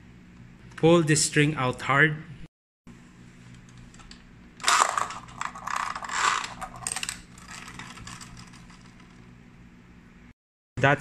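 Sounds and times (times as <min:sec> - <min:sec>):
spinning top whirring and rattling: 0:03.8 - 0:09.3
ratcheting whirr of gears: 0:04.6 - 0:09.0.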